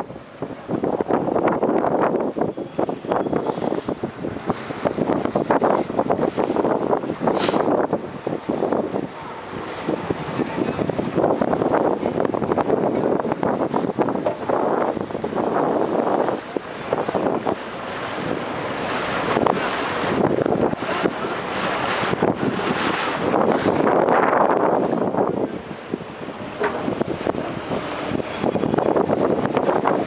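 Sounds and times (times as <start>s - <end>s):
water rushing past hull: 0.0s - 30.0s
wind buffeting microphone: 0.0s - 30.0s.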